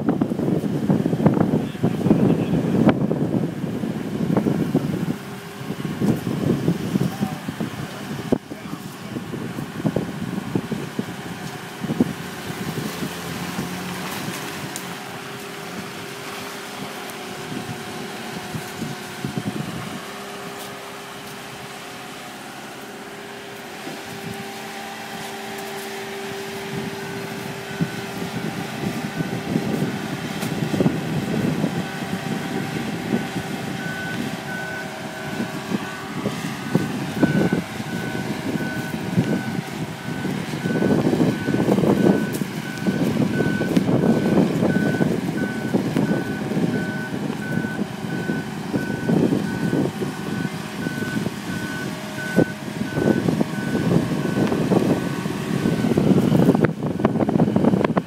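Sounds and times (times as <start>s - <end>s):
engine running under load: 0.0s - 58.0s
warning alarm beeping: 32.5s - 56.2s.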